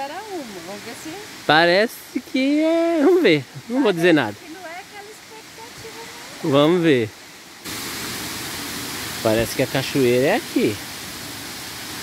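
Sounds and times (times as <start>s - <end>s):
stream water running over rocks: 0.0s - 12.0s.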